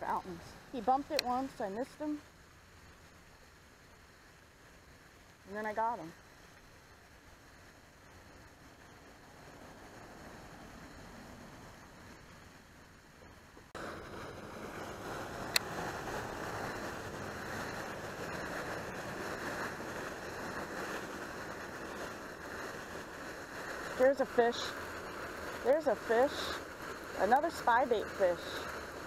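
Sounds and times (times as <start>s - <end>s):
outdoor rushing noise: 7.4s - 29.0s.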